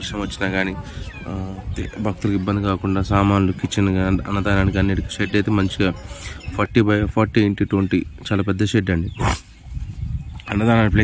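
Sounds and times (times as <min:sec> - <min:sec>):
man speaking: 0:00.0 - 0:09.4, 0:10.4 - 0:11.0.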